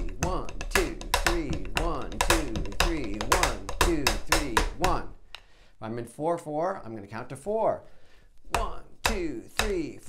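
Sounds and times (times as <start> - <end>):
person counting aloud: 0.0 - 5.2, 8.5 - 10.0
drumsticks tapping a beat: 0.0 - 5.6, 8.4 - 10.0.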